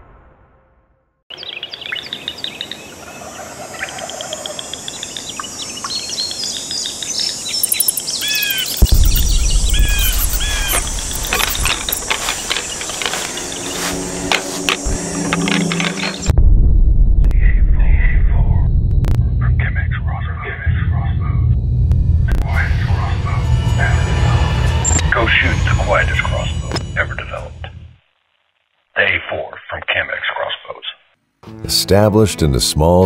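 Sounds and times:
birds chirping and calling: 1.3 - 16.3
deep low rumble: 8.7 - 28.0.

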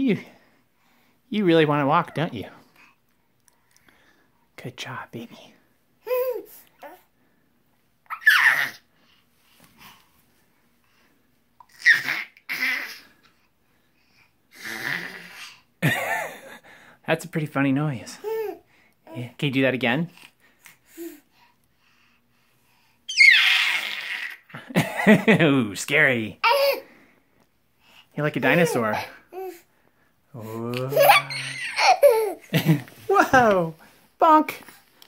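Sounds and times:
baby screeching: 8.1 - 8.8, 11.7 - 13.0, 23.1 - 24.5, 30.8 - 32.4.

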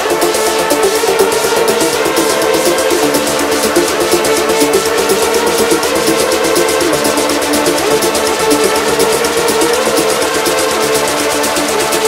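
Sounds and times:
fast hi-hat pattern: 0.0 - 12.0
melodic techno track: 0.0 - 12.0
sustained synth tone: 0.0 - 12.0.

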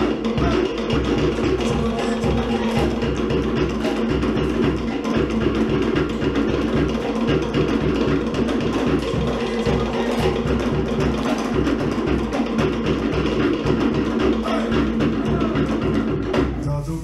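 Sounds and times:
deep bass drum: 0.0 - 17.0
wooden slit drums: 0.0 - 17.0.

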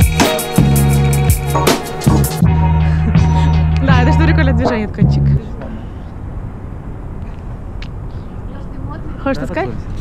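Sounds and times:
music with deep bass beat: 0.0 - 5.4
low rumble of city noise: 0.0 - 10.0.

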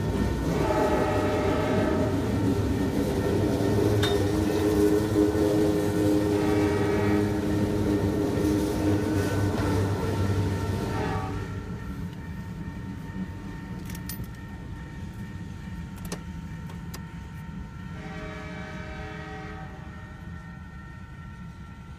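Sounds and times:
freight train rumbling: 0.0 - 21.9
horn-like tones chord: 0.4 - 2.5, 4.4 - 11.8, 18.0 - 20.3.

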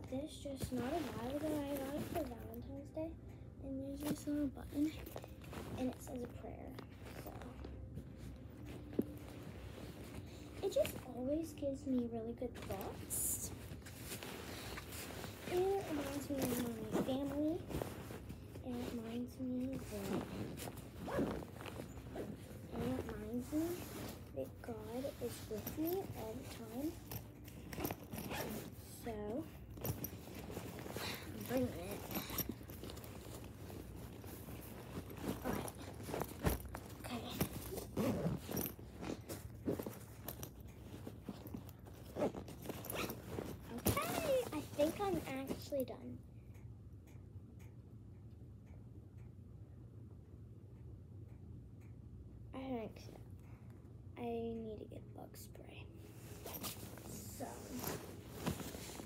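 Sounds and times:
fabric rustling: 0.0 - 2.7, 3.7 - 45.8, 56.0 - 59.0
zipper on fabric bag: 0.6 - 2.4, 12.6 - 45.3, 56.2 - 59.0.

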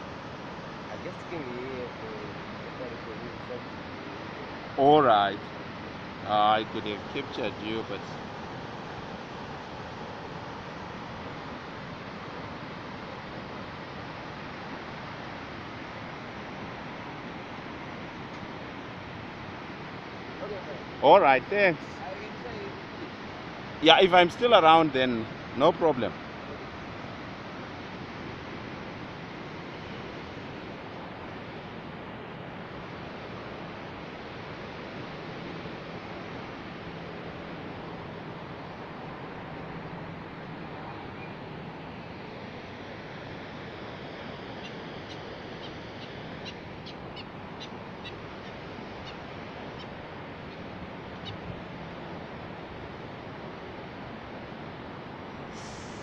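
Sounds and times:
whitewater rushing: 0.0 - 56.0.

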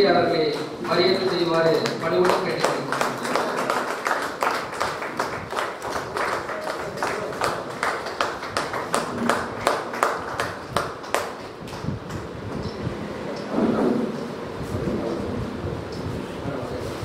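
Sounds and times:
small group clapping: 0.3 - 12.4.

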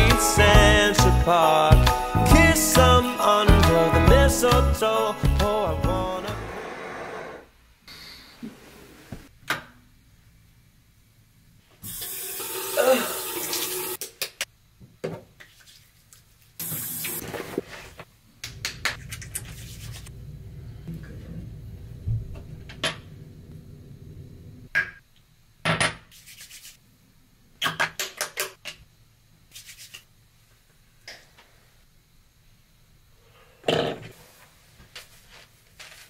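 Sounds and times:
sink tap running: 11.8 - 14.0.

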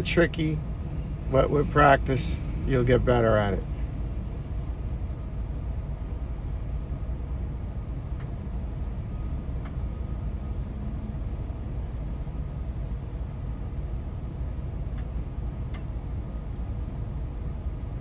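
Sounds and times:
low rumble inside vehicle cabin: 0.0 - 18.0.

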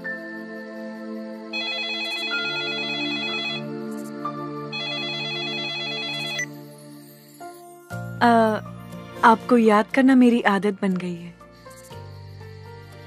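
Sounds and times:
soft background music: 0.0 - 13.0
mobile phone ringing: 1.5 - 3.8, 4.7 - 6.6.

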